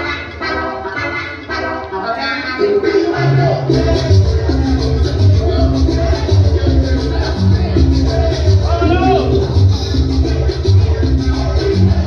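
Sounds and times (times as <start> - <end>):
upbeat dance music: 0.0 - 12.0.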